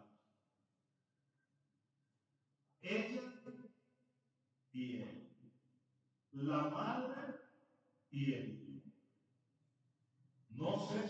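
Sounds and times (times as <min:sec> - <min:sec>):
man speaking: 0:06.4 - 0:07.2, 0:08.2 - 0:08.6, 0:10.5 - 0:11.0.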